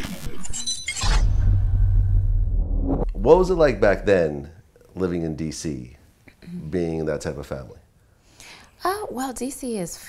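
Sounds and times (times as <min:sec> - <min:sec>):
deep bass drone: 0:01.2 - 0:04.1.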